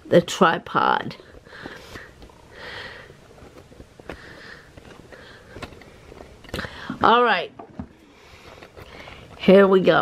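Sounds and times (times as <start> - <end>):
soft breaths: 1.1 - 7.1, 7.8 - 9.6.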